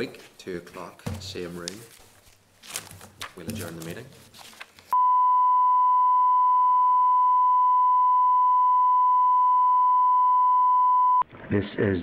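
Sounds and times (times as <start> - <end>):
steady test tone: 5.0 - 11.2.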